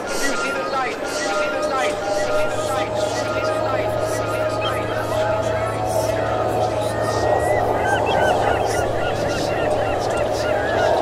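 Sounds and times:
birds chirping: 0.0s - 11.0s
steady low hum: 0.2s - 11.0s.

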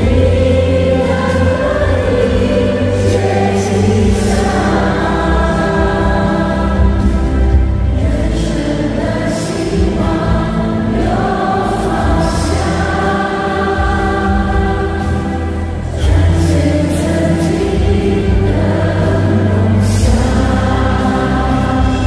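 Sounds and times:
women singing together: 0.0s - 22.0s.

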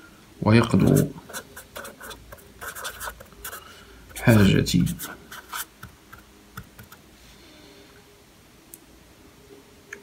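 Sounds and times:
pen scratching on paper: 0.8s - 3.6s, 4.2s - 7.0s.

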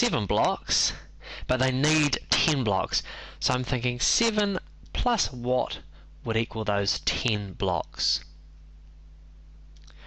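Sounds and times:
low steady hum: 0.0s - 10.0s
faint small clicks: 9.7s - 10.0s.

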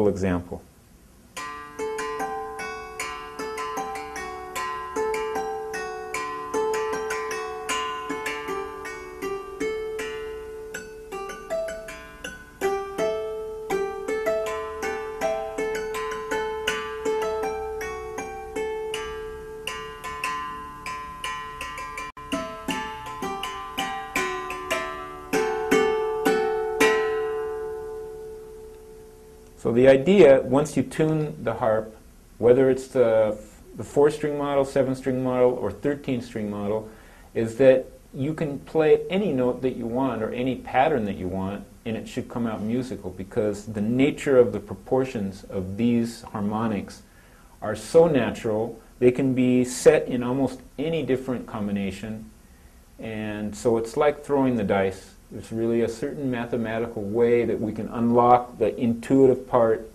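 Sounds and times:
plucked harp notes: 1.4s - 31.4s.

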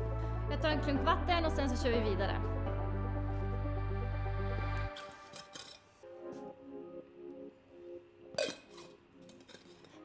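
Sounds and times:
metal bottle cap clinking: 5.0s - 5.9s, 8.4s - 10.0s.

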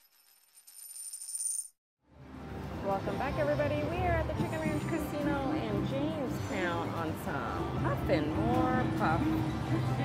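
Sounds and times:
coins jingling: 0.0s - 1.8s.

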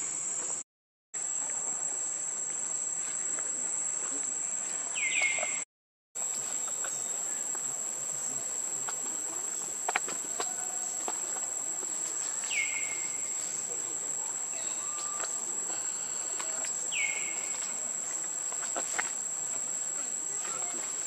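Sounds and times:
high-pitched insect drone: 6.3s - 21.0s.

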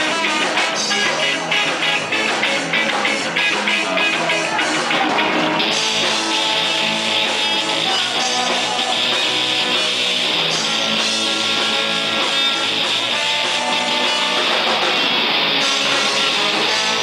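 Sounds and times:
trombone and saxophone horns: 0.0s - 9.2s, 15.6s - 17.0s
strummed electric guitars: 0.0s - 17.0s.

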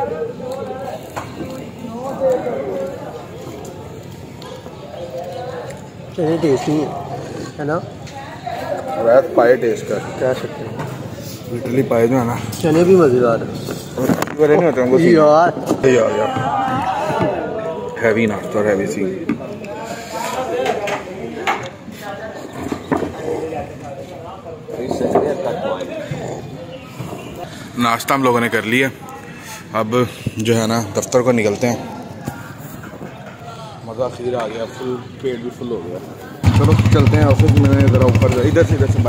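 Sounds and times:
faint background talk: 0.0s - 39.0s.

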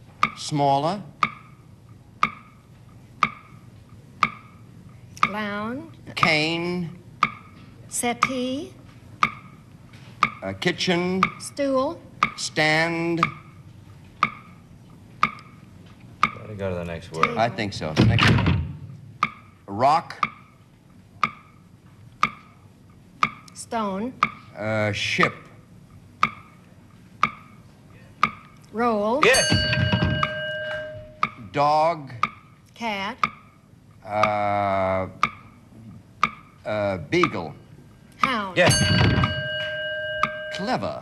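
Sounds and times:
countdown clock ticking: 0.2s - 1.6s, 2.2s - 3.6s, 4.2s - 5.6s, 7.2s - 8.5s, 9.2s - 9.6s, 10.2s - 13.6s, 14.2s - 14.6s, 15.2s - 17.6s, 19.2s - 20.6s, 21.2s - 22.6s, 23.2s - 24.6s, 26.2s - 27.6s, 28.2s - 41.0s.

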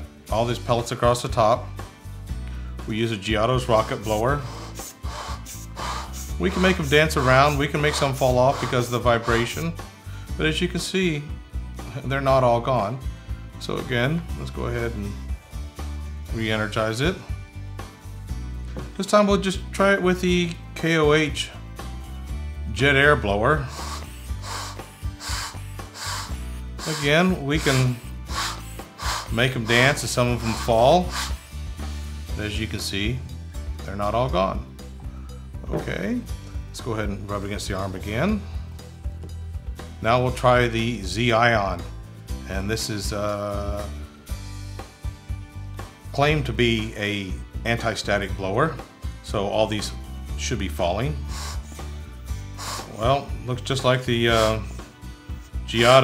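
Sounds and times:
background music with bass line: 0.0s - 56.0s
rubber-bulb air blower puffing: 3.6s - 9.9s, 23.6s - 32.2s, 51.2s - 53.3s, 54.2s - 55.5s.

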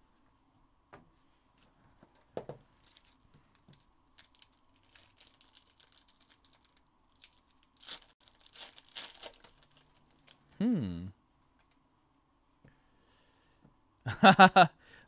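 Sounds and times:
foil wrapper tearing and crinkling: 2.8s - 10.4s.

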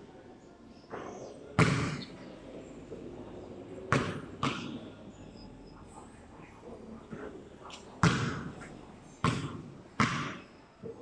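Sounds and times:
basketball hitting hoop: 1.6s - 2.1s, 8.0s - 8.5s, 9.2s - 10.4s
basketball bouncing on concrete: 8.0s - 8.5s, 9.2s - 10.4s.

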